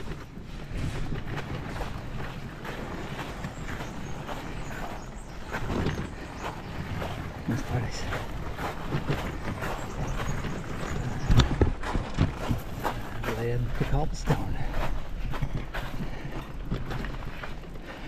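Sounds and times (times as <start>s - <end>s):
bicycle rattling over gravel: 0.0s - 18.0s.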